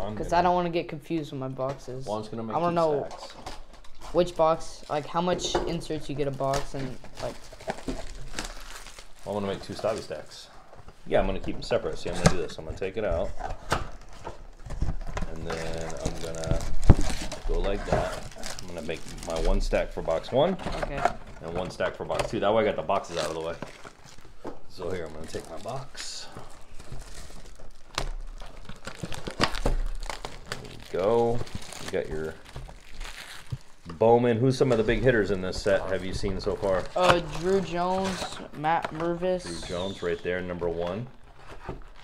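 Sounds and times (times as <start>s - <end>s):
packaging crinkling: 6.3s - 10.3s, 13.4s - 21.6s, 22.8s - 33.8s.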